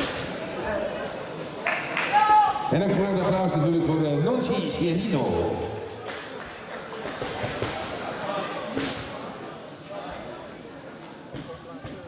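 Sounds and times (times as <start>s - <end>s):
chatter of voices in hall: 0.0s - 12.0s.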